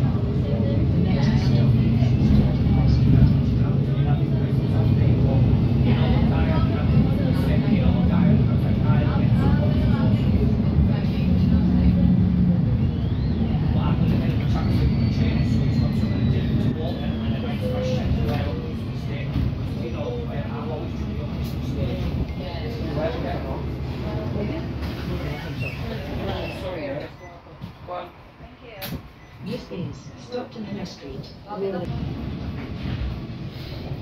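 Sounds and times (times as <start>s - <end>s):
bus diesel engine drone: 0.0s - 34.0s
road noise: 0.0s - 34.0s.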